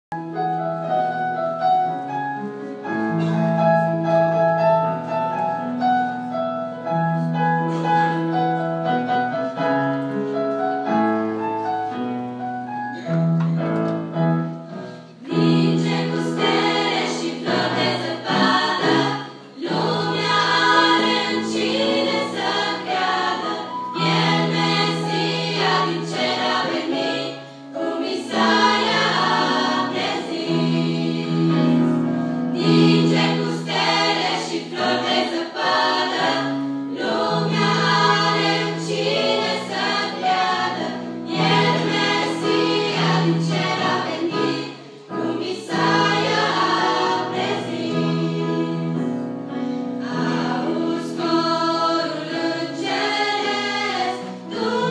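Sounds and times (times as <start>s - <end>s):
girls' choir singing: 15.2s - 49.2s, 50.0s - 54.9s.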